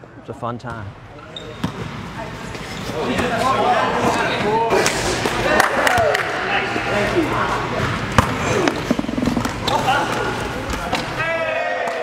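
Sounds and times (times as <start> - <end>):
basketball bouncing on gym floor: 7.8 - 9.6.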